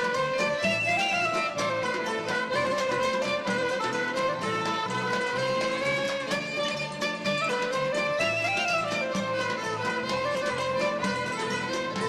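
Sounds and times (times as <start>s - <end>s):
bowed fiddle melody: 0.0s - 12.0s
plucked and hammered strings: 0.0s - 12.0s
string ensemble folk dance music: 0.0s - 12.0s.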